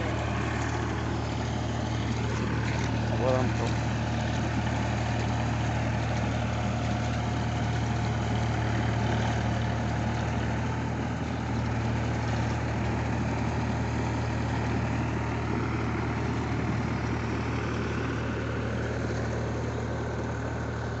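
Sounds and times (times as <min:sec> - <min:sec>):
tractor diesel engine under load: 0:00.0 - 0:21.0.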